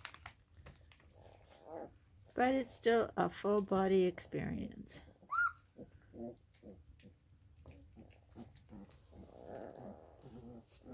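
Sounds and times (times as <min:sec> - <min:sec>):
puppies grunting and squeaking: 0:01.0 - 0:02.6, 0:05.0 - 0:10.9
wet eating noises: 0:06.0 - 0:10.9.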